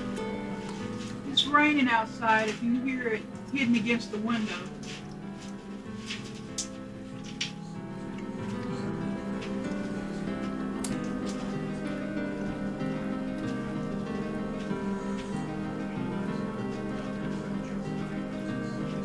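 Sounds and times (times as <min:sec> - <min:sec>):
instrumental music with plucked guitar: 0:00.0 - 0:19.0.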